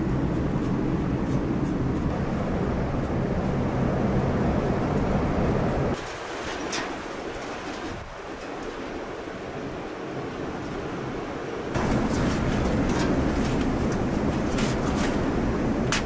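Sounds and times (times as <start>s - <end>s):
steady low rumble: 0.0s - 6.0s, 11.7s - 16.0s
outdoor ambience: 0.0s - 16.0s.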